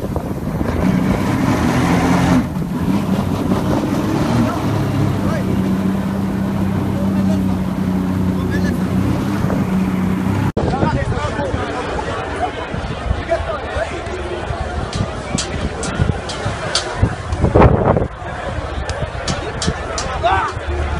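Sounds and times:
motorboat engine drone: 0.0 - 10.6
churning wake water: 0.0 - 20.9
wind on microphone: 0.0 - 20.9.

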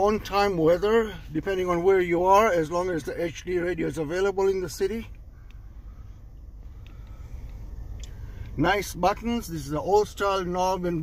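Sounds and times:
low steady car cabin rumble: 0.0 - 11.0.

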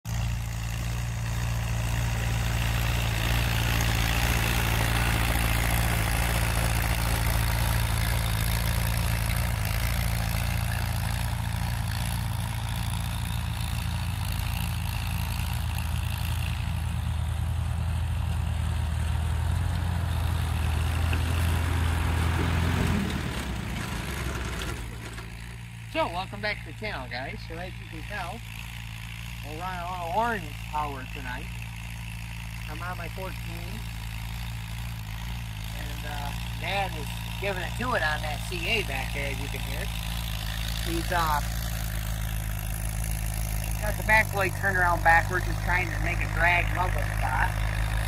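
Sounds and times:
tractor engine running: 0.0 - 48.0.

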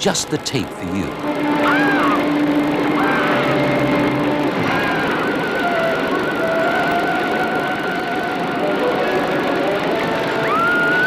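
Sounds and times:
rushing water: 0.0 - 11.0.

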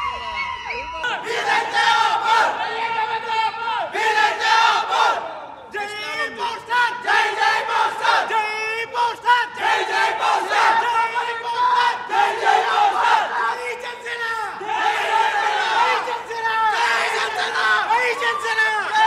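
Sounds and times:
crowd of men shouting and chanting: 0.0 - 19.0.

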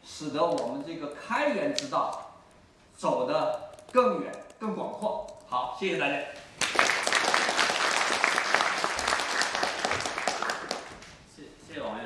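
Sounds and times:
audience applauding: 6.6 - 11.2.

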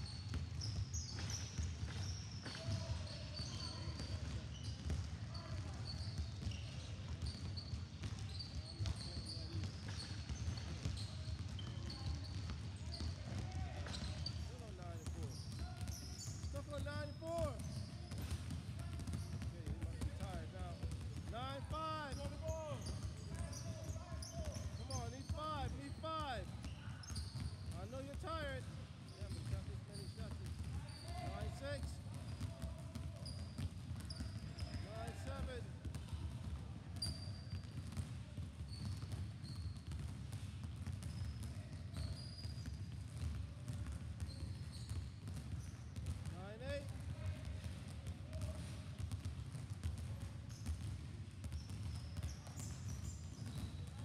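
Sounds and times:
basketballs dribbling on hall floor: 0.0 - 54.0.

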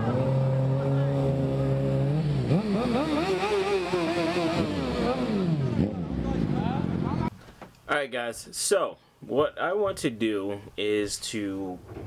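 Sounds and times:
vehicle engine revving: 0.0 - 7.3.

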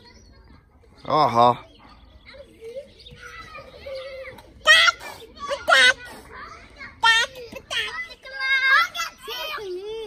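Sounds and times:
distant children calling and chattering: 0.0 - 10.0.

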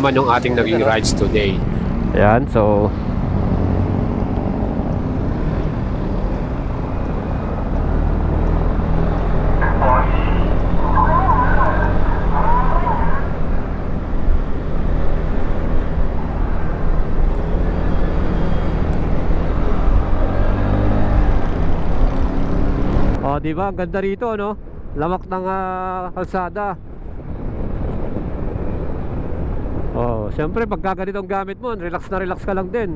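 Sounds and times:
road and wind noise: 0.0 - 32.9.

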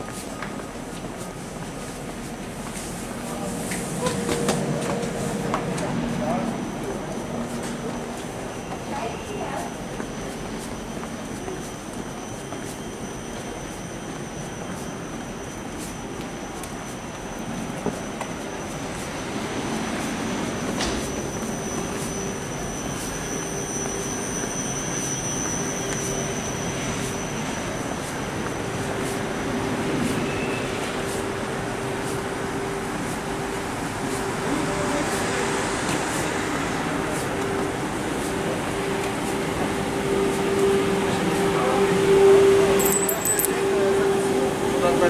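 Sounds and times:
train coach high-pitched whine: 0.0 - 45.0
murmur of voices: 34.2 - 45.0.

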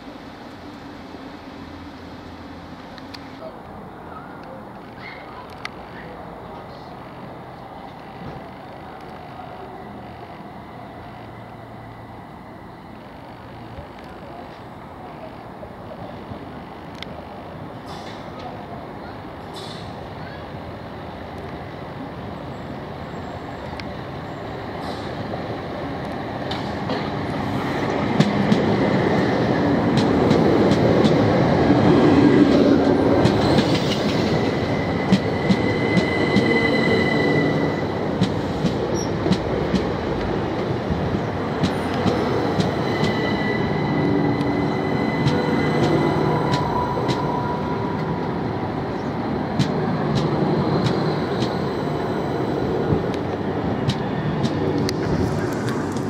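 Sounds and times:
electric train rumbling past: 0.0 - 56.0.

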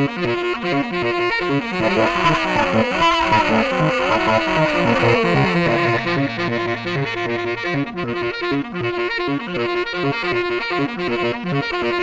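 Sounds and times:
solo saxophone: 0.0 - 12.0.

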